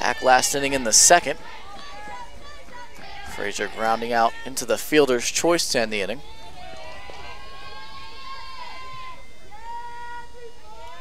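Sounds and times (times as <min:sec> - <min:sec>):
group chanting cheer: 0:00.0 - 0:04.7, 0:06.2 - 0:11.0.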